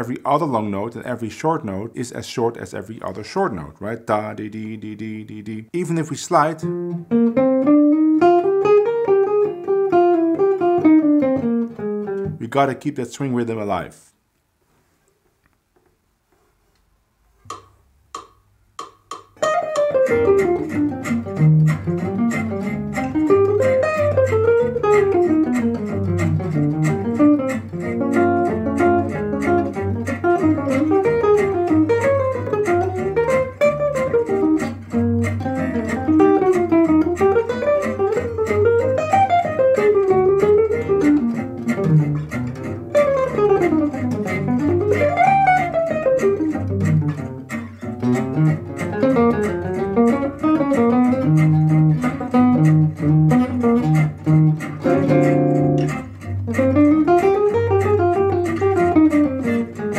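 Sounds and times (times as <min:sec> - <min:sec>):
jazz guitar playing bebop: 0:00.0 - 0:13.9, 0:18.8 - 0:59.9
jazz backing track: 0:05.7 - 0:12.6, 0:19.4 - 0:59.9
count-in clicks: 0:17.5 - 0:59.9
walking bass line: 0:18.2 - 0:59.9.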